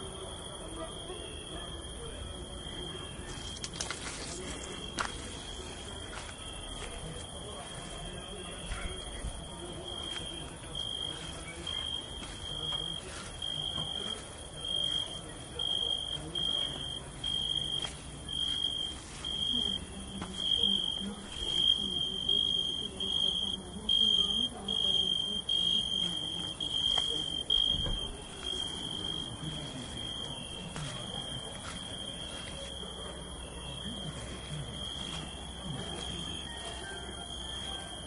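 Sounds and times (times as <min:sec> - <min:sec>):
crickets chirping: 0:00.0 - 0:38.0.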